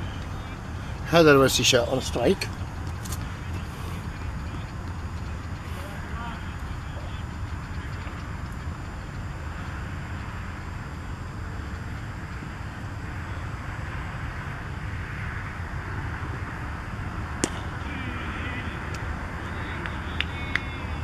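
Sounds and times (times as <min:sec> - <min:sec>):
outdoor rumble and hiss: 0:00.0 - 0:21.0.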